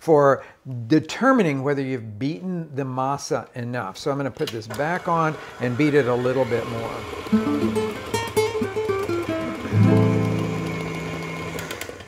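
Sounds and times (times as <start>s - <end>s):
acoustic guitar playing: 6.8s - 11.9s.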